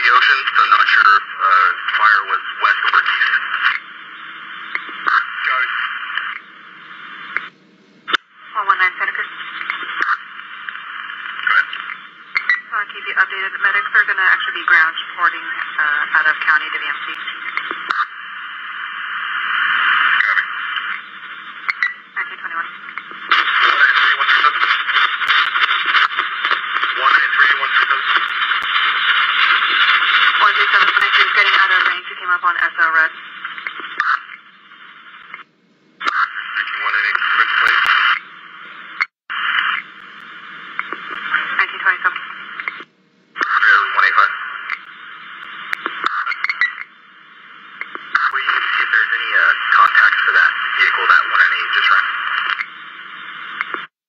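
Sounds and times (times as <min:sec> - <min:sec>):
police radio voices: 0:00.0 - 0:05.9, 0:08.4 - 0:18.3, 0:19.3 - 0:34.3, 0:36.0 - 0:38.2, 0:40.4 - 0:42.8, 0:43.4 - 0:44.9, 0:47.8 - 0:52.8
radio static hiss: 0:00.0 - 0:54.0.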